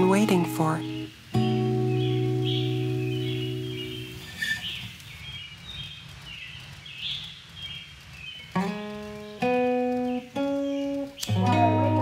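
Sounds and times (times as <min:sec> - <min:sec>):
acoustic guitar chord ringing: 0:00.0 - 0:04.6, 0:08.6 - 0:12.0
birds chirping: 0:00.0 - 0:12.0
faint outdoor background noise: 0:00.0 - 0:12.0.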